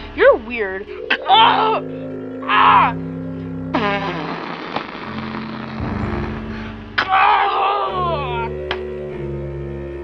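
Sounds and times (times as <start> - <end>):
background music with sustained chords: 0.0 - 10.0.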